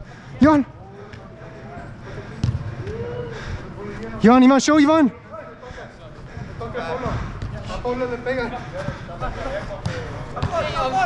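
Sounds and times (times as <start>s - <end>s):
ball kicked on turf: 2.4s - 2.6s
faint shouts of players: 2.8s - 3.6s.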